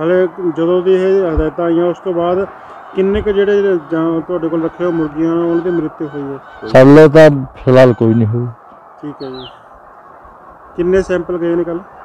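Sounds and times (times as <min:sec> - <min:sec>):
man speaking loudly: 0:00.0 - 0:09.4.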